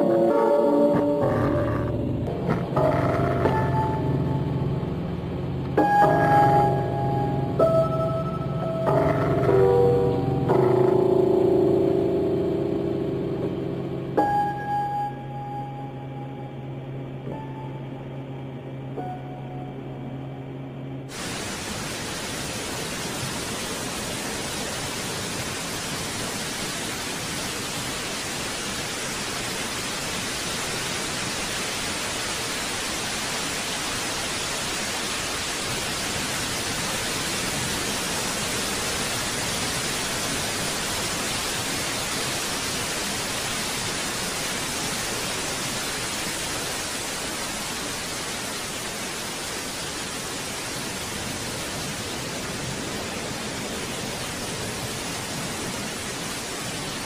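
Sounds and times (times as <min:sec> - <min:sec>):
static hiss: 0:00.0 - 0:18.0, 0:21.0 - 0:57.0
low hum with steady tones: 0:00.0 - 0:57.0.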